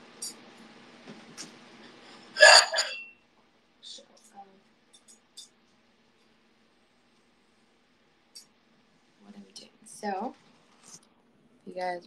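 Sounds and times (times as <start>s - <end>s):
ceramic plates clattering: 2.4s - 3.0s
plate ringing: 2.4s - 3.1s.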